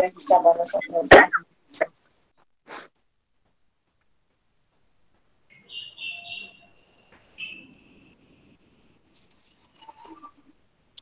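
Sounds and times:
high steady whistling tone: 5.5s - 9.4s.

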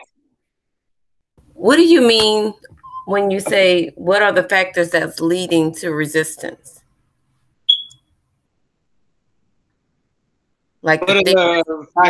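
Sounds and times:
high-pitched electronic beep: 7.7s - 8.0s.

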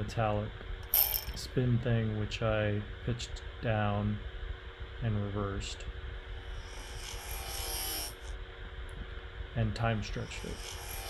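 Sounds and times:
low steady hum: 0.0s - 11.0s
airy hiss: 10.0s - 11.0s.

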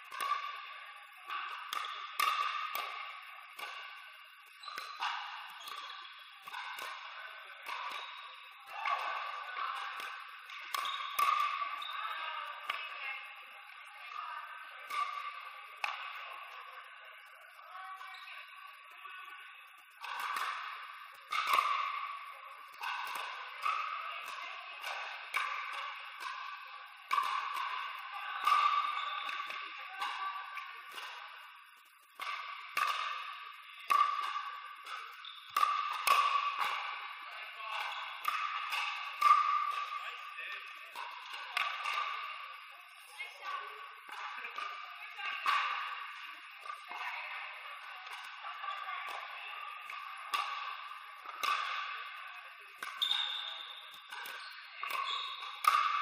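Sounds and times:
paddles hitting pickleball: 0.0s - 13.2s, 20.0s - 31.3s, 32.0s - 56.0s.

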